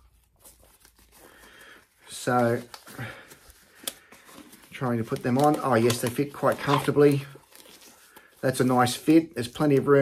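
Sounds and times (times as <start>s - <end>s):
nitrile glove rustling: 0.0s - 10.0s.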